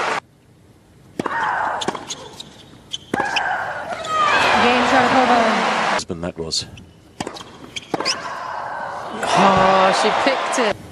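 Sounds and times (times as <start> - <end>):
player shrieking: 3.2 - 4.8
crowd cheering and applauding: 4.2 - 6.0, 9.0 - 10.8
tennis racket hitting ball: 7.2 - 8.3.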